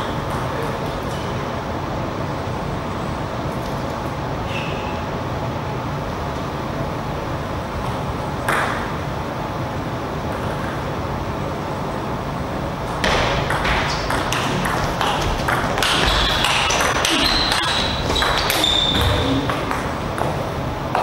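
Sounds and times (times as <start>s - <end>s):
steady hall hum: 0.0s - 21.0s.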